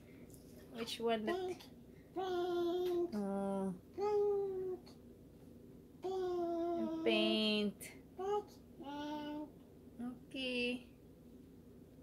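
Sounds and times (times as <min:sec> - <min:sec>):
child singing held notes: 0:01.3 - 0:03.2.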